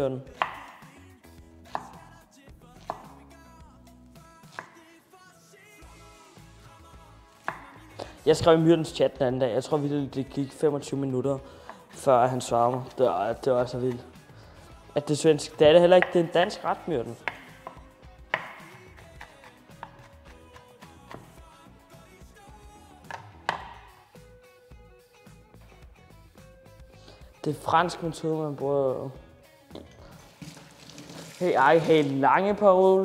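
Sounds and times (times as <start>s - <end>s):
quiet background music: 0.0s - 33.0s
knife chopping on wooden board: 0.4s - 0.9s, 1.7s - 2.0s, 2.8s - 3.2s, 4.5s - 4.8s, 7.4s - 7.8s, 15.9s - 16.6s, 17.2s - 21.4s, 23.0s - 24.0s.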